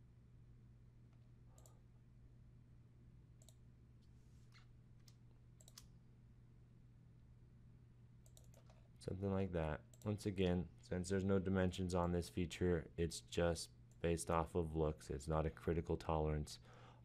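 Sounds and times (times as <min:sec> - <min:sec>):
steady low hum: 0:00.0 - 0:17.0
computer mouse clicks: 0:01.1 - 0:01.8, 0:03.4 - 0:05.9, 0:08.2 - 0:08.9.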